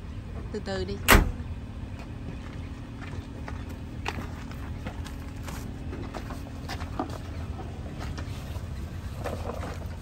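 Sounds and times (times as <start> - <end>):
tailgate slamming shut: 1.0 - 1.4.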